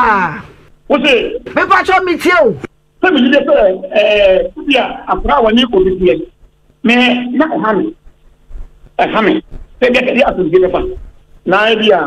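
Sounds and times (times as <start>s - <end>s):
person talking: 0.0s - 8.0s, 9.0s - 12.0s.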